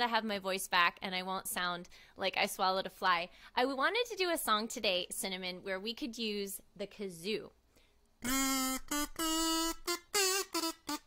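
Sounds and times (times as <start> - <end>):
kazoo buzzing a tune: 8.2 - 11.0.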